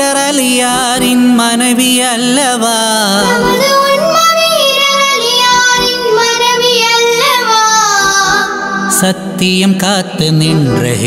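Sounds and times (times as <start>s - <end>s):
children singing a devotional song: 3.2s - 9.1s.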